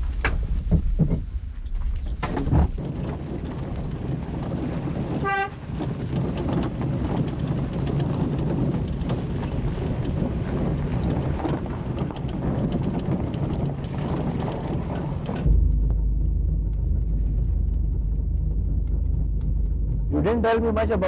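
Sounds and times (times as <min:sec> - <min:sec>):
car engine and road rumble: 0:00.0 - 0:21.0
car horn toot: 0:05.2 - 0:05.6.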